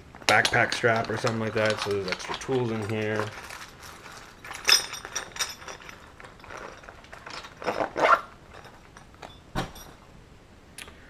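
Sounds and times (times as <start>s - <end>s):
bag contents rustling: 0.0s - 10.1s.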